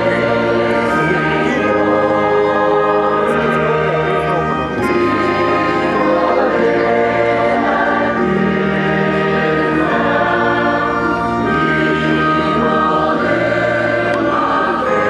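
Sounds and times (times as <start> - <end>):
choir singing held chords: 0.0 - 15.0.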